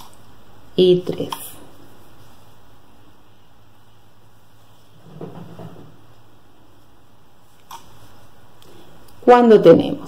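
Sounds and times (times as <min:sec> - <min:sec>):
soft yarn rustles: 0:00.8 - 0:09.4.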